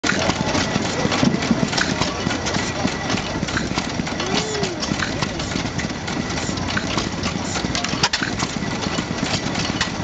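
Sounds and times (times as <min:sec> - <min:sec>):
engine clicks and knocks: 0:00.0 - 0:10.0
gas engine running slowly: 0:00.0 - 0:10.0.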